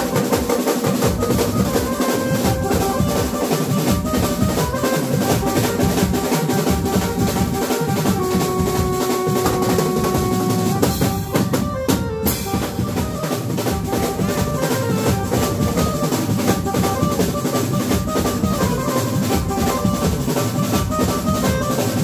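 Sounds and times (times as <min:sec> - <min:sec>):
drum kit with toms and cymbals: 0:00.0 - 0:22.0
keyboard held notes: 0:01.0 - 0:22.0.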